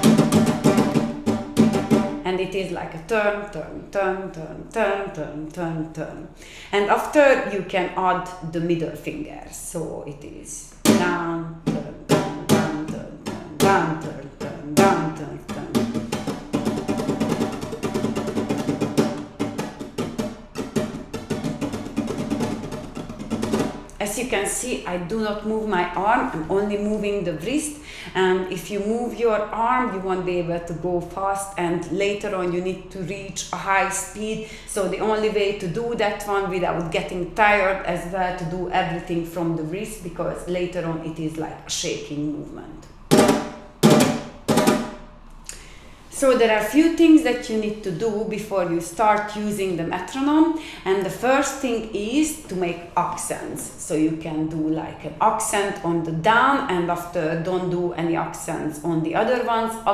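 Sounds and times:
flamenco guitar strumming: 0:00.0 - 0:03.0, 0:10.8 - 0:24.6, 0:42.9 - 0:45.2.

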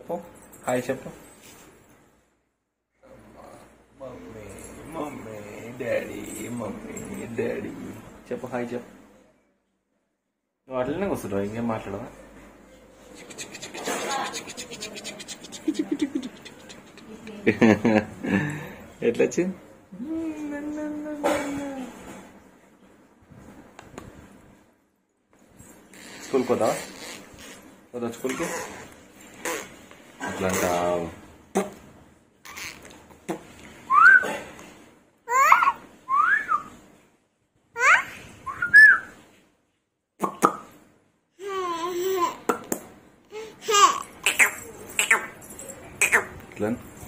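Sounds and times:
short vocal sound: 0:13.1 - 0:17.3.

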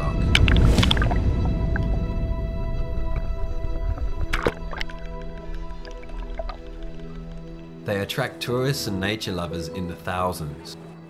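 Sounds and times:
soft background music: 0:00.0 - 0:11.0
man narrating: 0:07.8 - 0:10.9.

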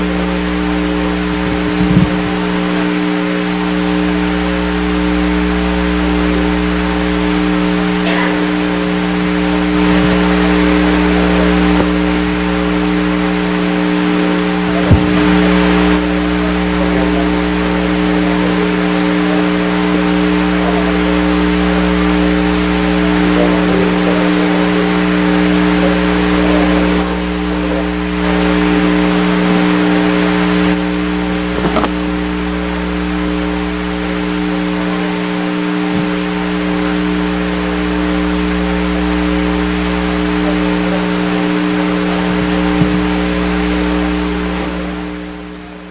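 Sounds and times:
loud mechanical hum: 0:00.0 - 0:45.9.

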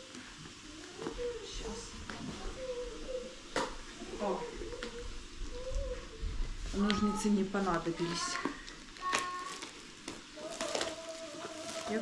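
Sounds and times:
soft wavering voice: 0:00.6 - 0:08.4
cardboard packaging pulled open: 0:10.4 - 0:12.0.

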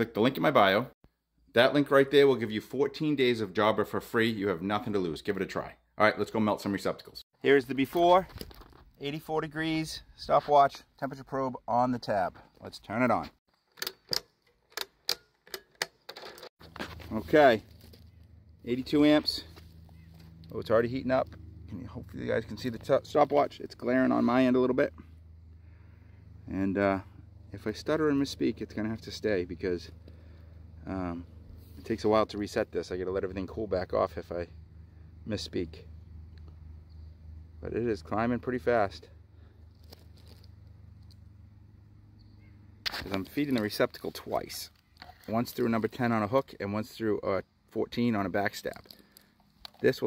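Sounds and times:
low electrical hum: 0:16.7 - 0:50.0.

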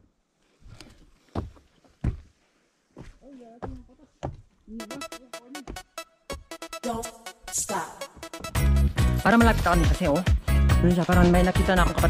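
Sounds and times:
soft footsteps: 0:00.4 - 0:04.7.

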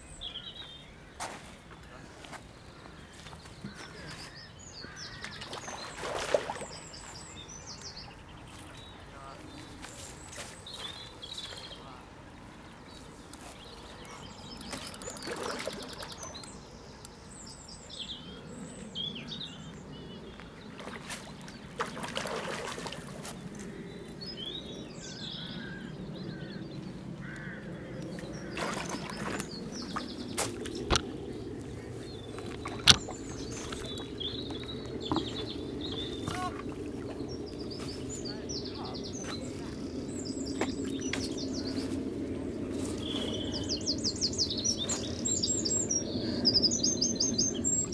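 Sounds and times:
outdoor background noise: 0:00.0 - 0:47.9
small birds chirping: 0:00.0 - 0:47.9
sharp clicks: 0:14.4 - 0:17.2.

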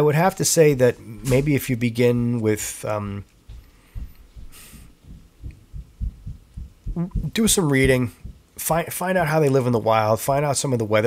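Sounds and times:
soft low thuds: 0:03.4 - 0:09.4.

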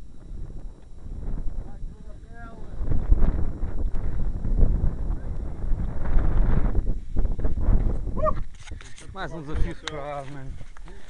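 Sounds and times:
wind buffeting microphone: 0:00.0 - 0:10.7
camera handling noise: 0:08.4 - 0:09.2.

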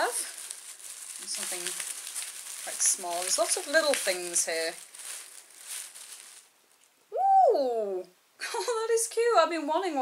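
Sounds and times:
plastic bag rustling: 0:00.0 - 0:06.8.

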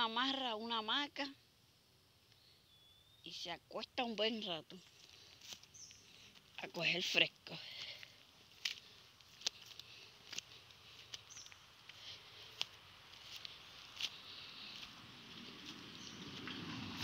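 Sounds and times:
faint steady high hiss: 0:00.0 - 0:16.5
footsteps on gravel path: 0:04.7 - 0:17.0.

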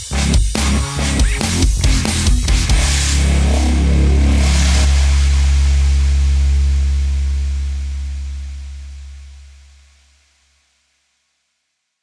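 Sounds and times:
dubstep track: 0:00.0 - 0:06.2
deep bass synth note: 0:00.2 - 0:10.2.

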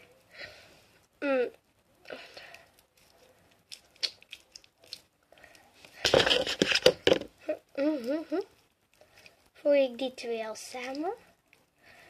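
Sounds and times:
sticky slime squelches: 0:02.0 - 0:06.9.

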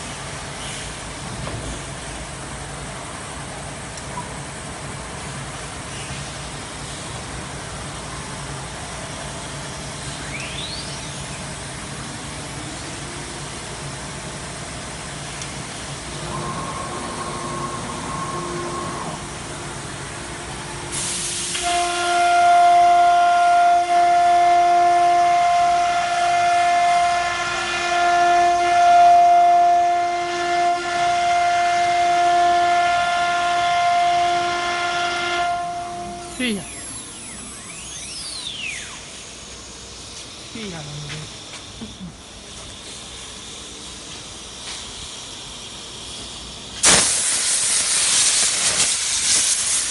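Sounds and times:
low machine hum: 0:09.7 - 0:20.9
router spindle high-pitched whine: 0:36.3 - 0:39.3.

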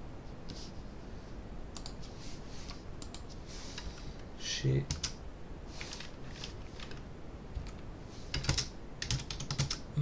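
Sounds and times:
keyboard keystrokes: 0:07.6 - 0:09.8.

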